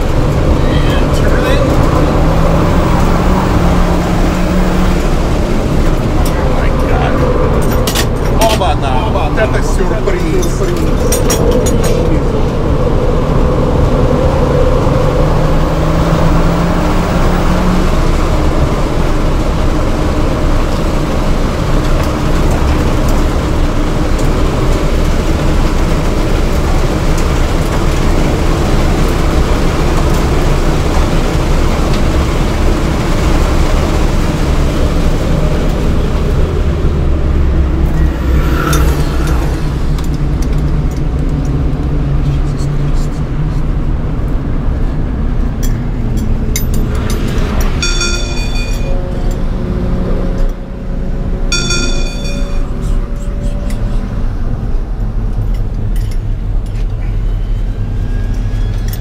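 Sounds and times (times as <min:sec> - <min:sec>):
car engine at speed: 0:00.0 - 0:59.0
tyre and road noise: 0:00.0 - 0:59.0.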